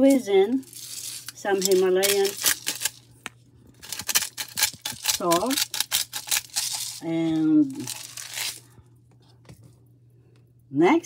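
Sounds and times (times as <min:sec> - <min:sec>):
salt grinder crunching: 0:00.6 - 0:08.7.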